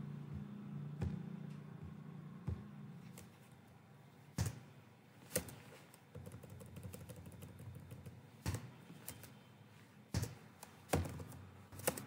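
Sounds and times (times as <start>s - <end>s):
keyboard keystrokes: 6.2s - 9.3s, 10.2s - 12.0s.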